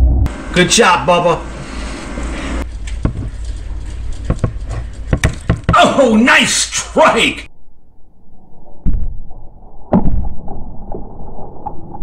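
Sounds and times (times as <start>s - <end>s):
low hum: 0.0s - 5.5s, 7.4s - 12.0s.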